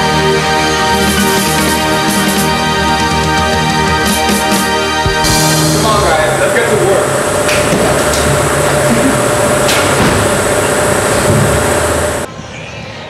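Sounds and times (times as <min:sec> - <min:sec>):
held rock guitar chord: 0:05.0 - 0:11.2.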